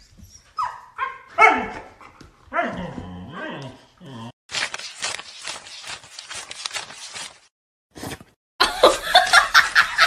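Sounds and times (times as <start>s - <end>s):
dog barking: 0.6s - 2.8s.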